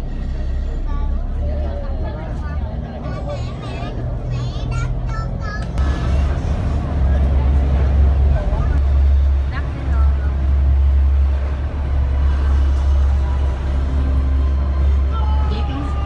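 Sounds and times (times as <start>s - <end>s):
ferry engines droning: 0.0s - 16.0s
passenger voices: 0.0s - 16.0s.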